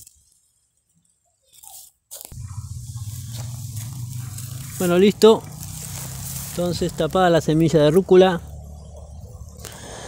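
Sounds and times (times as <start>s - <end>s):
compost crunching in fingers: 1.5s - 7.0s
low rumble with hiss: 2.4s - 7.3s.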